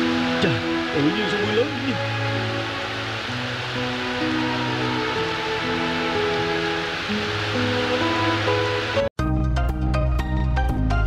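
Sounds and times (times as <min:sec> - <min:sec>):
heavy rain hissing: 0:00.0 - 0:09.1
slow background music: 0:00.0 - 0:11.0.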